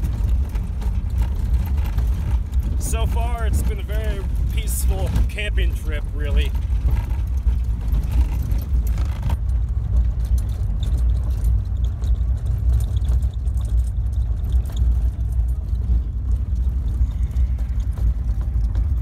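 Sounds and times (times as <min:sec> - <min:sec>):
light rattling and clicking: 0:00.0 - 0:19.0
vehicle rumbling on gravel road: 0:00.0 - 0:19.0.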